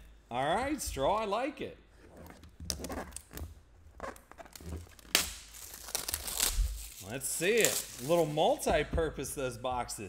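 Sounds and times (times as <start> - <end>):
plastic crinkling in hands: 4.0 - 8.5
plastic wrapping tearing: 4.0 - 8.5.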